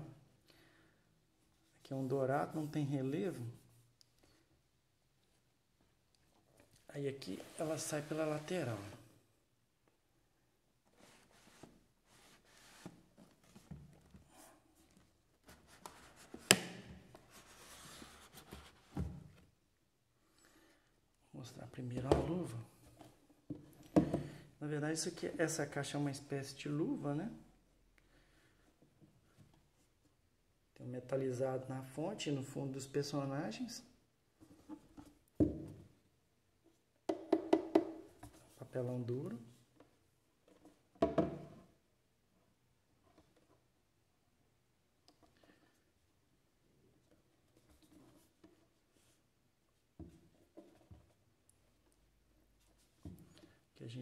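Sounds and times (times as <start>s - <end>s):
cardboard rubbing and scraping: 17.2s - 19.0s.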